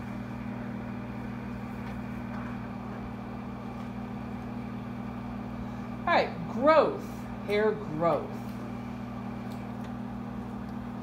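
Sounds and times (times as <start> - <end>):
low electrical drone: 0.0 - 11.0
projector cooling fan hum: 0.0 - 11.0.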